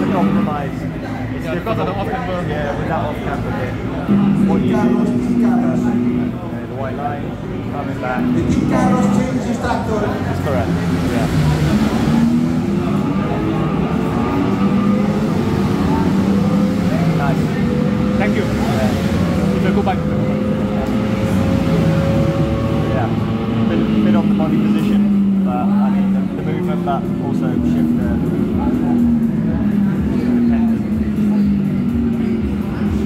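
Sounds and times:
indistinct voices talking: 0.0s - 33.0s.

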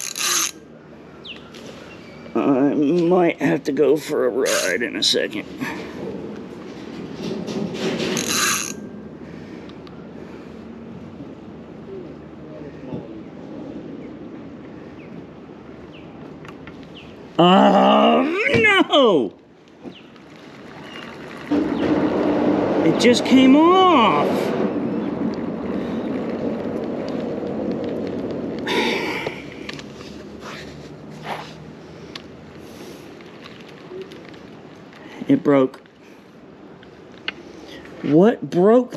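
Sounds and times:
fishing reel clicking and whirring: 0.0s - 0.6s, 8.2s - 8.8s.

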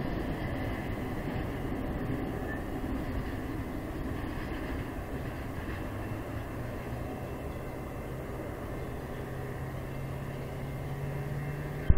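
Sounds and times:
background rumble: 0.0s - 11.9s
diesel locomotive hum: 0.0s - 11.9s.

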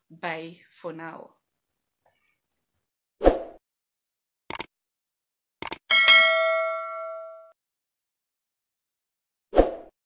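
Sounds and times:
sharp clicks: 4.5s - 4.7s, 5.6s - 5.8s
notification bell ding: 5.9s - 7.6s.

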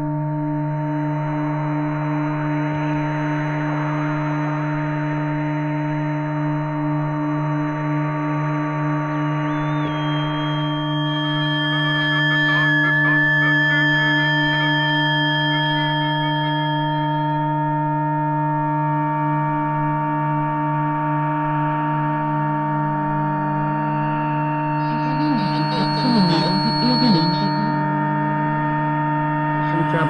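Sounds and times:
rising whistle: 8.9s - 17.6s, 23.9s - 28.8s
pulsing low drone: 24.4s - 30.0s
layered electronic tones: 24.8s - 28.5s.

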